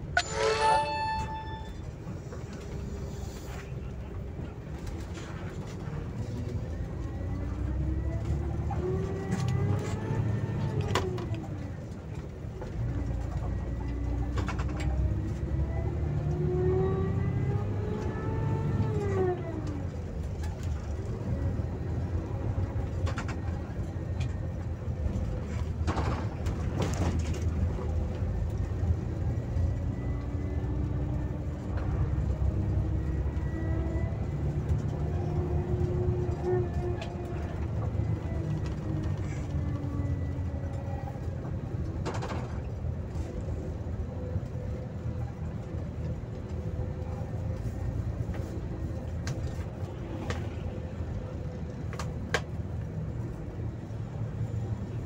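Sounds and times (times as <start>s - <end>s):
bus engine rumble and whine: 0.0s - 55.0s.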